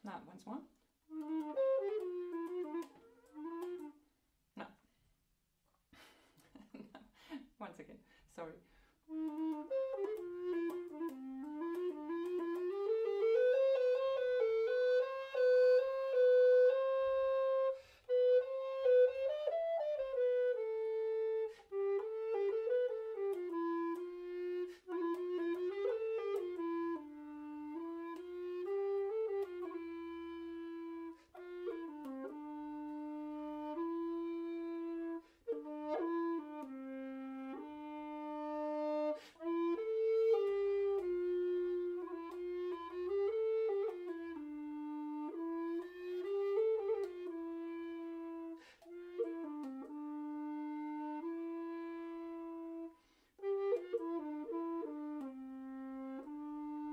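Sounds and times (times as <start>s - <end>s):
solo tenor recorder: 0.1s - 4.2s, 9.1s - 56.9s.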